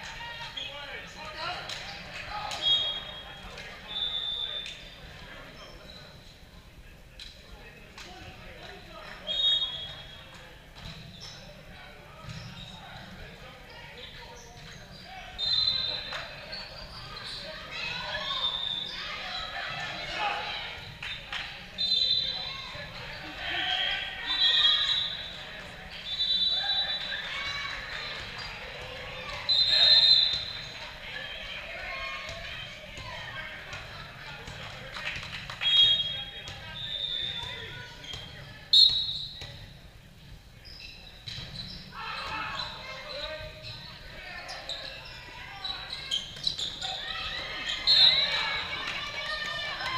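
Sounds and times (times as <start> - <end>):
players' voices: 0.0 - 49.9
referee's whistle blast: 35.6 - 37.4, 38.7 - 39.4
balls bouncing on hard court: 37.2 - 40.4.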